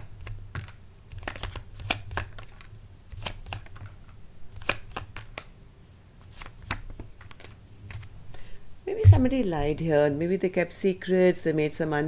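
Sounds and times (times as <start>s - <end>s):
cards being shuffled: 0.0s - 5.5s, 6.2s - 8.1s.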